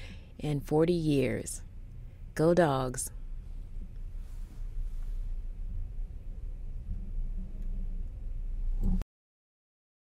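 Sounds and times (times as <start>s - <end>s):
low rumble: 0.0s - 9.0s.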